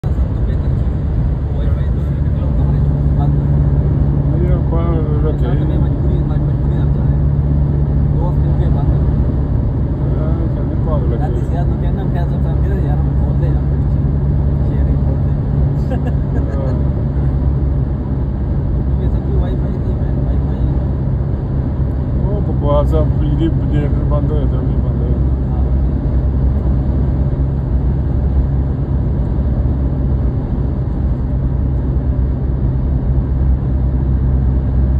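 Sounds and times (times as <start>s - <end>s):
car road and engine rumble: 0.0s - 34.9s.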